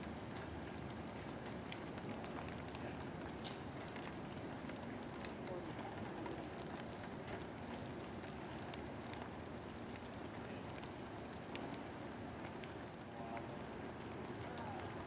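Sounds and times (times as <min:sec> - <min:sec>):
raindrops pattering close: 0:00.0 - 0:15.0
steady rainfall hiss: 0:00.0 - 0:15.0.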